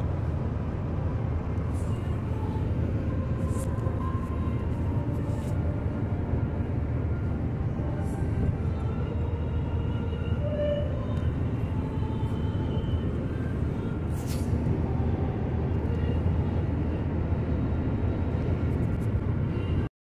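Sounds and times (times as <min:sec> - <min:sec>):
car cabin road rumble: 0:00.0 - 0:19.9
passing air hisses: 0:14.0 - 0:14.7.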